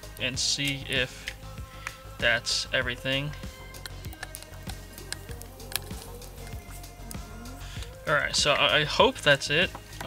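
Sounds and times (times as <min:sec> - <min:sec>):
background music with held notes: 0:00.0 - 0:10.0
wet clicks and squelches: 0:03.7 - 0:07.2.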